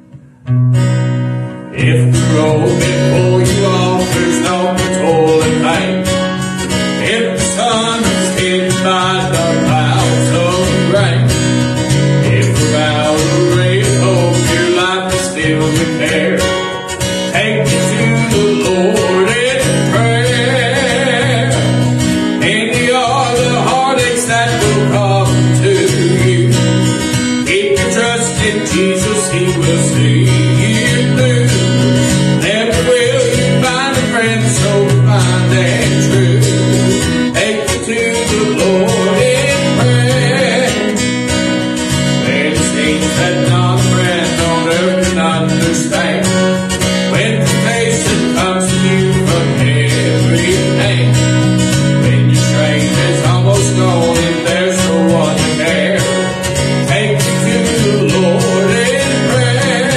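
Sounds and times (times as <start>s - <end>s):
acoustic guitar strumming: 0.0s - 59.9s
man singing a hymn: 1.7s - 41.4s, 42.0s - 59.9s.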